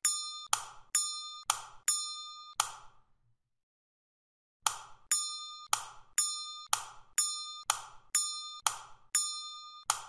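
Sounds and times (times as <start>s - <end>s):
bell-like electronic ding: 0.0s - 2.6s, 5.1s - 10.0s.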